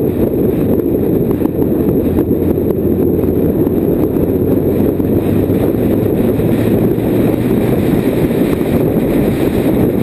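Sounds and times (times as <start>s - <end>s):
motorcycle engine running: 0.0s - 10.0s
wind noise on microphone: 0.0s - 10.0s.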